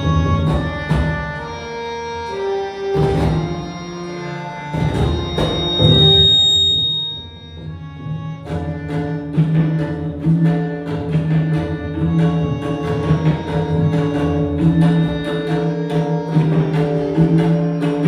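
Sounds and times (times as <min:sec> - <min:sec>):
sustained melodic accompaniment: 0:00.0 - 0:18.0
tabla drumming: 0:00.0 - 0:18.0.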